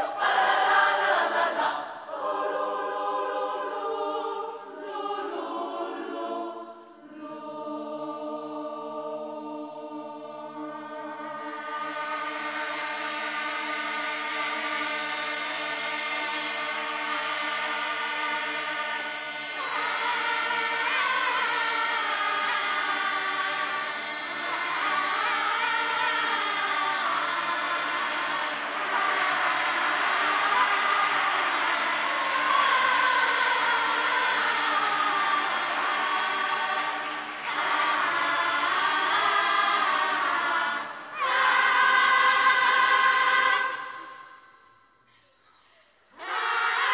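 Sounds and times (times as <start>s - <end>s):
choir singing a cappella: 0.0s - 44.7s, 45.9s - 46.9s.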